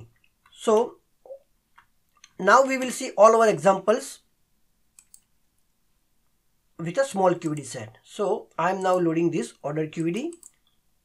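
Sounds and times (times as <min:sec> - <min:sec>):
computer mouse clicks: 0:04.9 - 0:05.4, 0:10.0 - 0:10.8.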